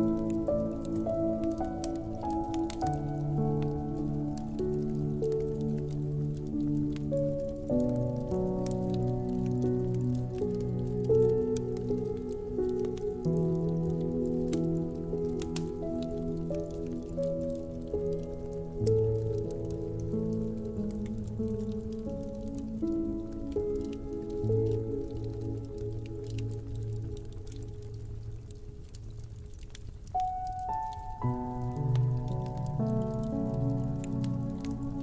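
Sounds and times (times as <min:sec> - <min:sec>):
slow soft piano music: 0:00.0 - 0:35.0
wood fire crackling and popping: 0:00.0 - 0:35.0.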